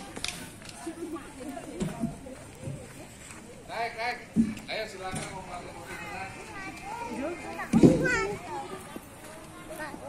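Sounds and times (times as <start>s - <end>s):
children and adults chattering: 0.0s - 10.0s.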